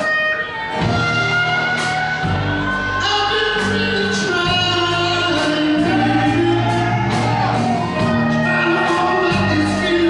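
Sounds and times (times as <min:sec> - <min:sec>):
bass guitar: 0:00.0 - 0:10.0
drums: 0:00.0 - 0:10.0
electric guitar: 0:00.0 - 0:10.0
lead singer singing: 0:01.8 - 0:10.0.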